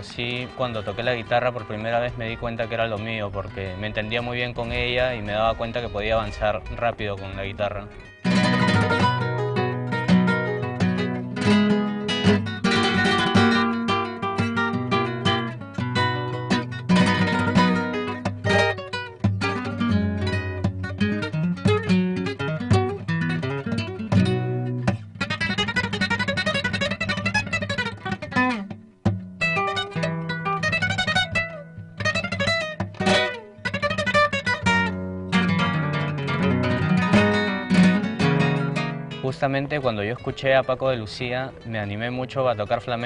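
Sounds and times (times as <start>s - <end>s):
flamenco acoustic guitar: 0.0s - 43.0s.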